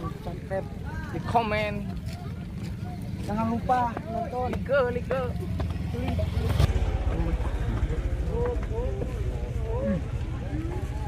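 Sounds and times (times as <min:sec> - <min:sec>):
low steady rumble: 0:04.7 - 0:11.0.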